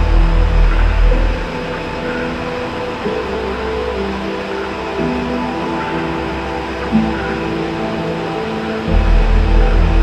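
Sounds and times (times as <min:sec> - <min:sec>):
dark ambient music: 0:00.0 - 0:10.0
low bass drone: 0:00.0 - 0:10.0.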